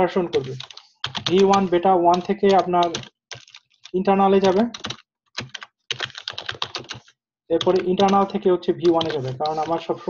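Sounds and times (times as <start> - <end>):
typing on computer keyboard: 0.3 - 9.9.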